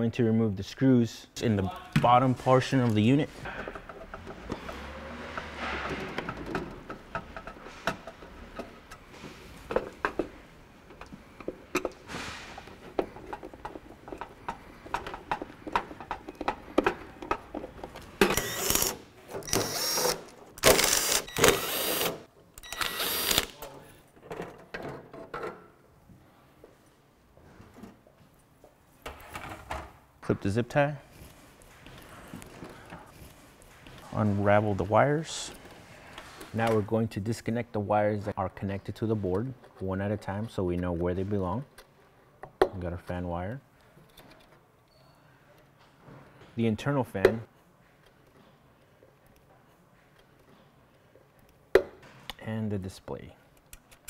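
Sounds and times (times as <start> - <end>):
power drill bursts: 18.3 - 18.9, 19.5 - 23.5.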